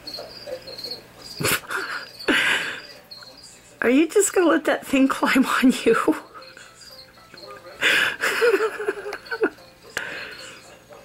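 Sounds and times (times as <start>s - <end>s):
cricket chirping: 0.0s - 3.6s, 6.3s - 10.8s.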